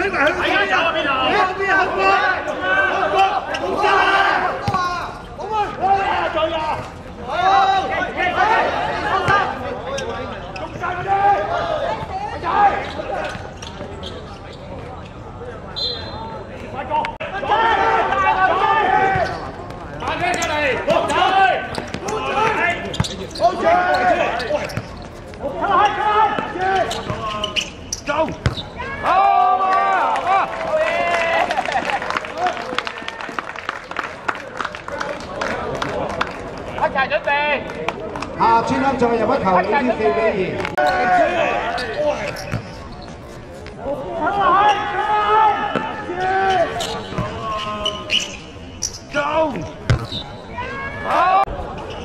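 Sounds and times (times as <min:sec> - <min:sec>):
people shouting: 0:00.6 - 0:06.7, 0:17.2 - 0:19.3, 0:25.5 - 0:26.9, 0:28.8 - 0:31.4, 0:44.0 - 0:46.8, 0:50.5 - 0:51.5
football being kicked: 0:49.9 - 0:50.2.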